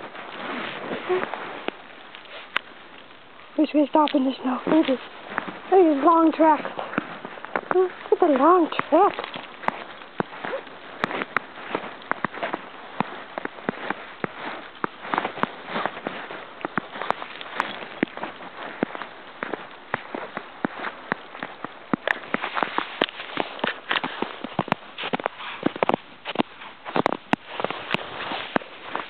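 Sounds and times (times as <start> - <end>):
footsteps crunching in snow: 0.0 - 29.0.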